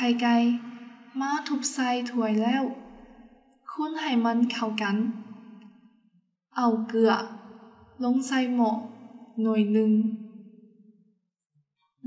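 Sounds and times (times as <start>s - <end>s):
woman reading aloud: 0.0s - 0.6s, 1.2s - 2.8s, 3.7s - 5.1s, 6.6s - 7.3s, 8.0s - 8.8s, 9.4s - 10.2s.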